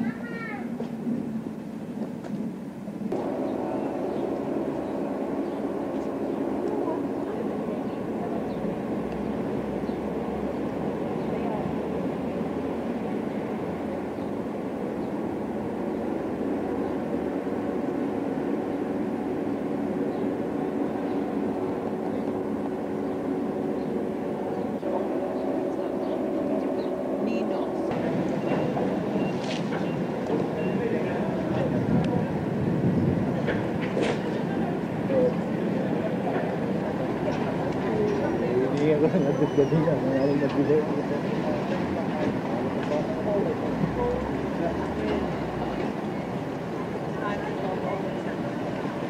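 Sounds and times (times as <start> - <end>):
low mechanical drone: 2.9 - 38.9.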